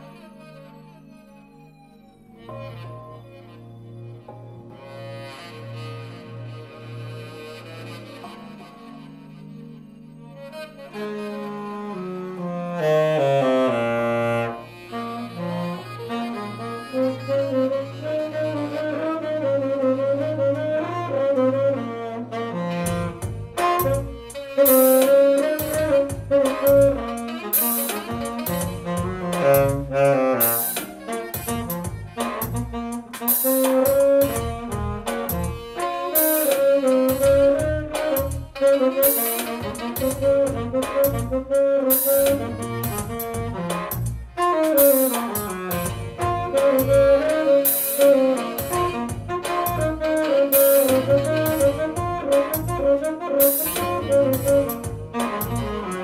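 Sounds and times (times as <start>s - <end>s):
backing music: 0.0s - 56.0s
saxophone jazz melody: 0.0s - 56.0s
steady drum beat: 22.8s - 56.0s.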